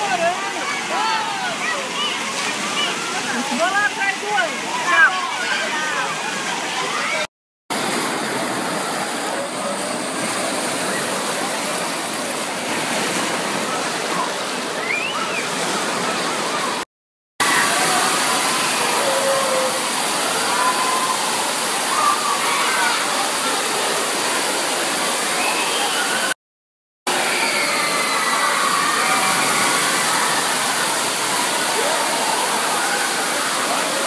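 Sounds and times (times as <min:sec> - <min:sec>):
children's voices and shouts: 0:00.0 - 0:07.3, 0:17.4 - 0:23.9.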